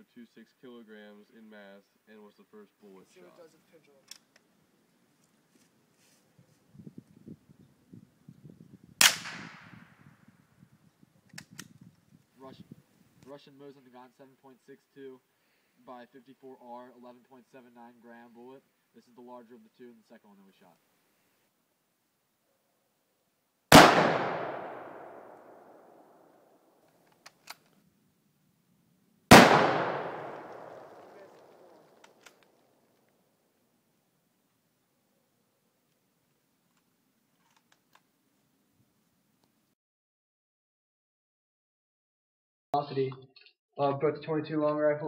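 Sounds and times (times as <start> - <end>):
rifle shot with echo: 9.0 - 10.0, 23.7 - 26.4, 29.3 - 32.1.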